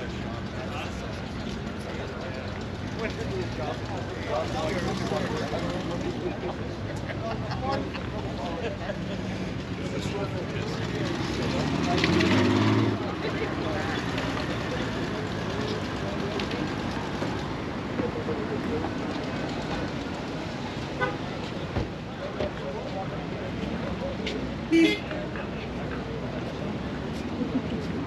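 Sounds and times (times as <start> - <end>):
car engine revving: 10.6 - 15.0.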